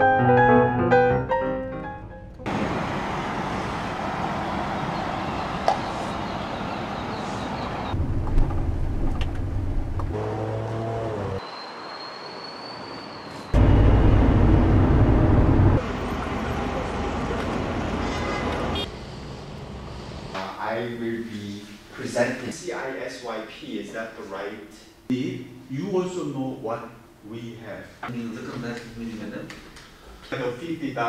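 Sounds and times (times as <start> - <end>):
road traffic noise: 2.4 - 20.4
loud low rumble: 8.0 - 10.2, 13.6 - 16.0.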